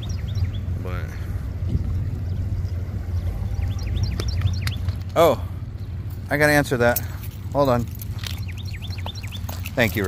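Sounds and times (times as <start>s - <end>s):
small birds chirping: 0.0s - 10.0s
steady low rumble: 0.0s - 10.0s.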